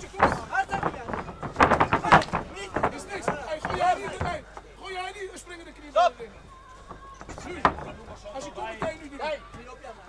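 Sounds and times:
dull thud of a blow: 0.0s - 4.4s
men shouting: 0.0s - 5.1s.

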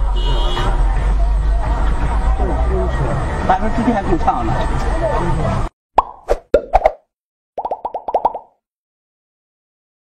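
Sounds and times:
cartoon plops dropping in pitch: 6.0s - 7.0s, 7.6s - 8.6s.

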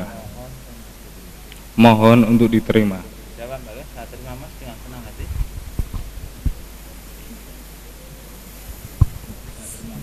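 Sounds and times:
microphone handling thumps: 5.2s - 6.8s, 8.7s - 9.8s.

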